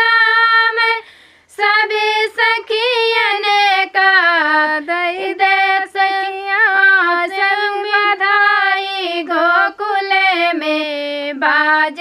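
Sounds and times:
women singing unaccompanied: 0.0 - 12.0.

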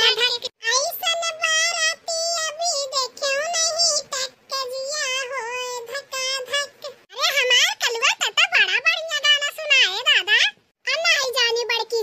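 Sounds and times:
high-pitched cartoon voice singing: 0.0 - 12.0.

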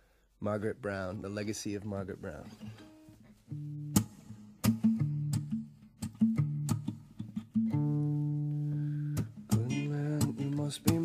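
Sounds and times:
acoustic guitar strumming chords: 2.4 - 11.0.

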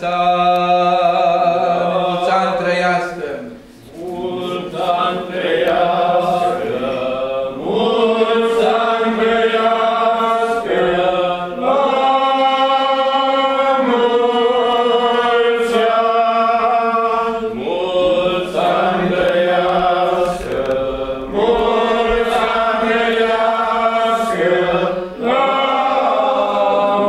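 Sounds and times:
congregation chanting: 0.0 - 27.0.

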